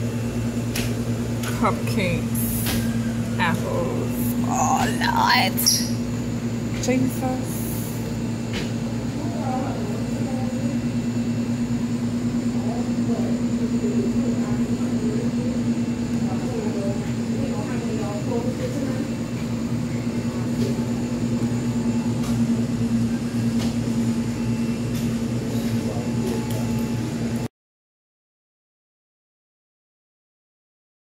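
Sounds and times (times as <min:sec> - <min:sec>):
low machine hum: 0:00.0 - 0:27.5.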